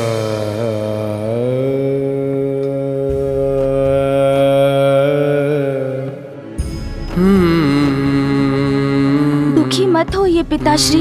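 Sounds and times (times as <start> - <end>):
chanted vocal note: 0.0 - 10.1
steady low drone: 0.0 - 11.0.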